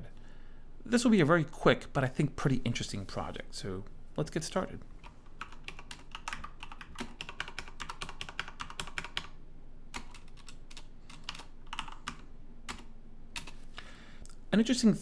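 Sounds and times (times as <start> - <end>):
typing on a computer keyboard: 5.0 - 13.6.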